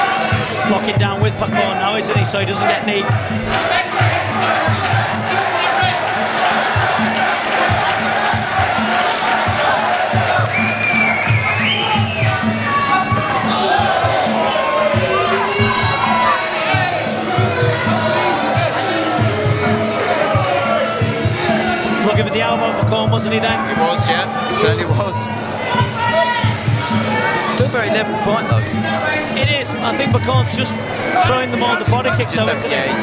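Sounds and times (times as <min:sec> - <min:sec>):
fight music with drum beat: 0:00.0 - 0:27.9
crowd shouting and cheering: 0:00.0 - 0:33.0.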